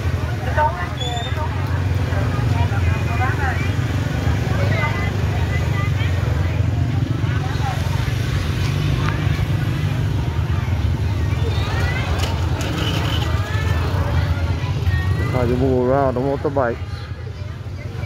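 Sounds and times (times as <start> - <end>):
chatter of many voices: 0.0 - 18.0
motorbike engines running: 0.0 - 18.0.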